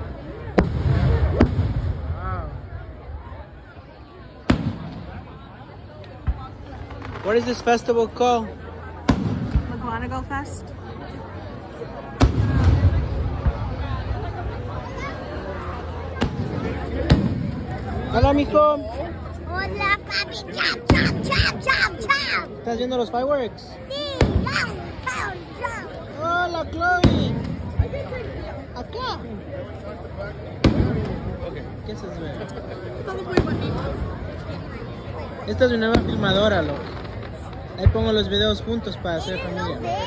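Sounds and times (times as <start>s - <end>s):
people talking: 0.0s - 40.0s
firework bang: 0.5s - 2.6s, 4.4s - 5.3s, 6.2s - 7.9s, 9.0s - 10.1s, 12.2s - 14.1s, 16.1s - 17.8s, 24.1s - 25.1s, 30.6s - 31.5s.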